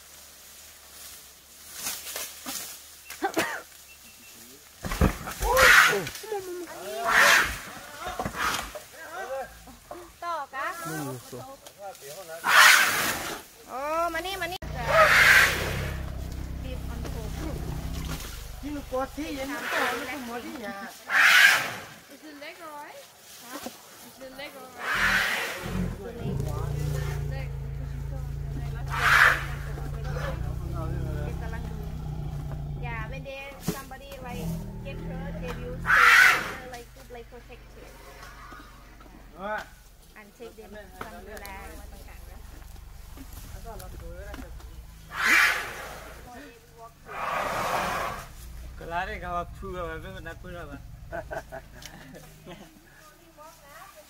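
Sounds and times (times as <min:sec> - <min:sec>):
low rumbling growl: 0:14.2 - 0:20.3, 0:24.9 - 0:52.8
elephant gliding cries: 0:14.6 - 0:18.6, 0:24.8 - 0:33.4, 0:34.4 - 0:36.8, 0:44.6 - 0:46.3
elephant deep roar: 0:14.6 - 0:20.2, 0:24.8 - 0:39.4, 0:41.3 - 0:52.6.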